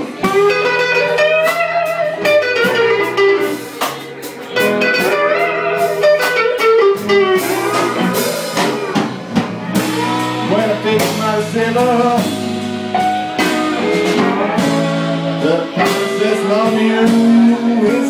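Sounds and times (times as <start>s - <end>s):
lead electric guitar solo: 0.0s - 3.8s, 4.5s - 10.9s
drum kit: 0.0s - 18.0s
rhythm guitar: 0.0s - 18.0s.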